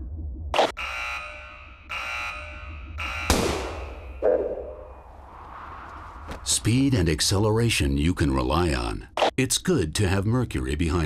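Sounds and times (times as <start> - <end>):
buzzer tones: 0.6 - 4.2
starter pistol shot: 3.3 - 4.1.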